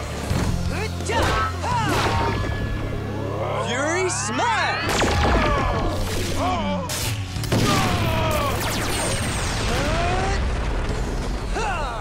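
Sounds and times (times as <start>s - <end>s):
explosions booming and crackling: 7.4s - 12.0s.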